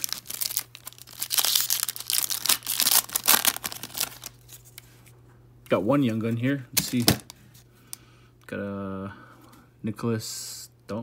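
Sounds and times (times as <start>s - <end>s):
foil wrapper crinkling: 0.0s - 4.9s.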